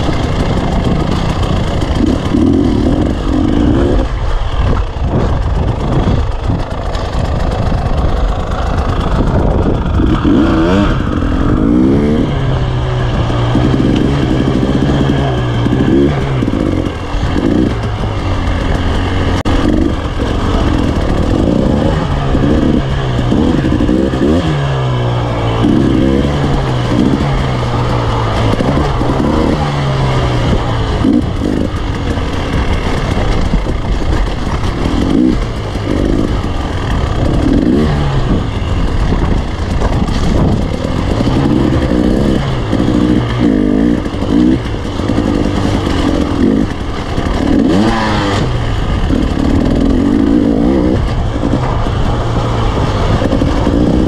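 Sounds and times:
chassis noise: 0.0s - 54.0s
dirt bike engine revving: 0.0s - 54.0s
wind noise: 0.0s - 54.0s.

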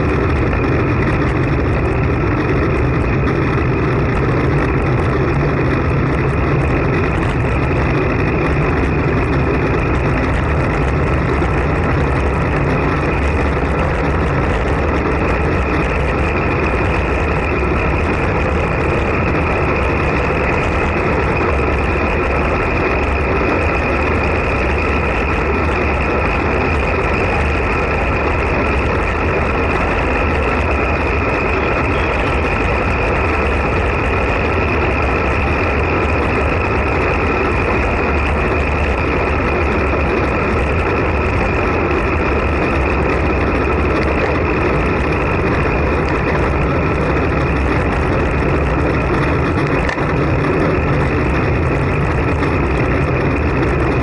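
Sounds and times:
bicycle tyre noise on asphalt: 0.0s - 54.0s
wind rushing over microphone: 0.0s - 54.0s.

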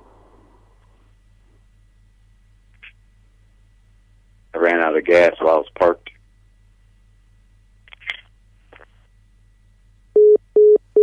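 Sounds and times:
low line hum: 0.0s - 10.8s
electronic telephone beeps: 10.2s - 11.0s.

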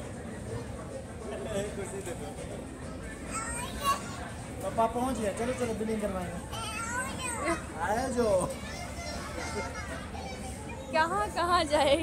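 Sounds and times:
low hum of indoor shop: 0.0s - 12.0s.

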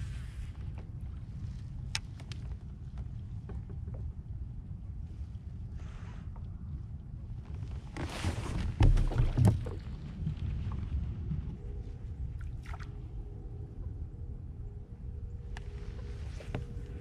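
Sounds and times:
faint steady hum: 0.0s - 8.1s, 9.0s - 17.0s
low rumble of water: 0.0s - 17.0s
wind: 0.0s - 17.0s.

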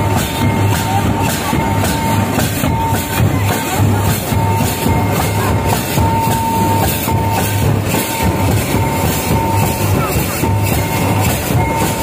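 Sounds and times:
barrel drums: 0.0s - 12.0s
large kettle drum: 0.0s - 12.0s.

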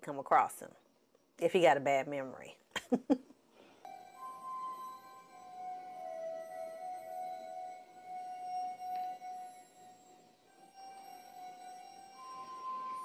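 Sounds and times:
eerie electronic film music: 3.9s - 13.0s.

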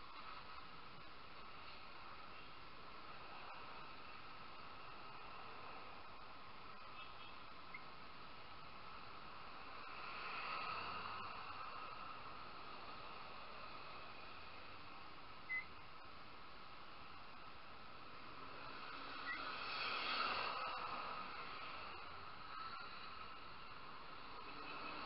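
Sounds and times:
motorcycle riding noise: 16.6s - 25.0s.

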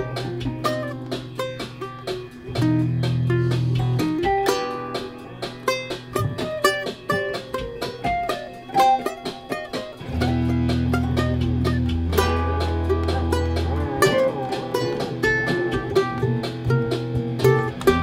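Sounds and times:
plucked ukulele and guitar notes: 0.0s - 18.0s
long held low bass notes: 10.1s - 18.0s
wavering high notes: 12.0s - 18.0s.

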